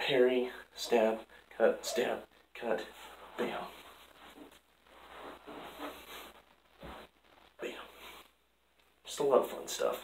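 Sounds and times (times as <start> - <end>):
clothing rustling and swishing: 2.9 - 8.4.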